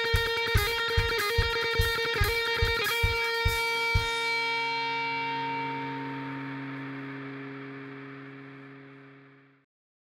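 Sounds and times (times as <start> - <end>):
electric guitar chord ringing: 0.0 - 9.6.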